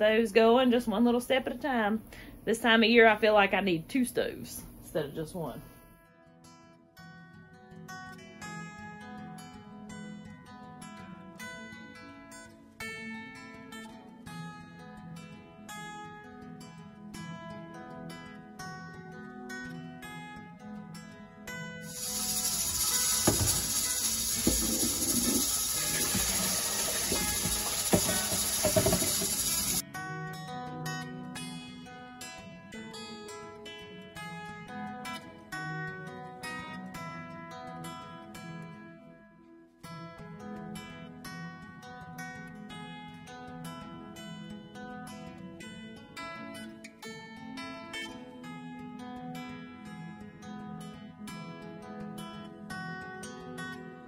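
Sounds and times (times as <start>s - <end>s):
acoustic guitar music: 5.4s - 54.0s
water running into metal sink: 21.9s - 29.8s.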